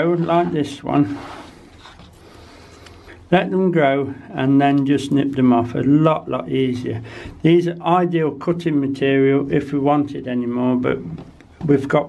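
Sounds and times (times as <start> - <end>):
man speaking: 0.0 - 1.3, 3.3 - 12.0.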